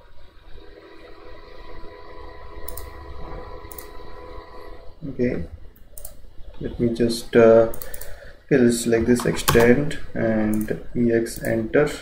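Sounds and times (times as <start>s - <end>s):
low background hum: 0.0s - 12.0s
computer mouse clicks: 2.7s - 2.9s, 3.7s - 3.9s, 6.0s - 6.2s, 7.7s - 8.2s.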